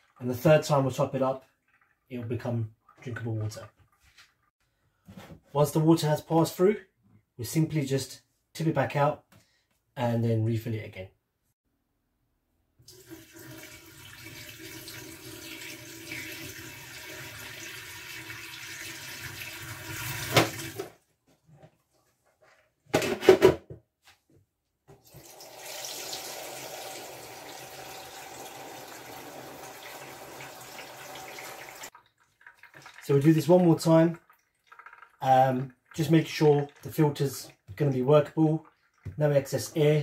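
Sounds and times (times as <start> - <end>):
water poured into a sink: 12.8 - 20.9, 25.1 - 39.9.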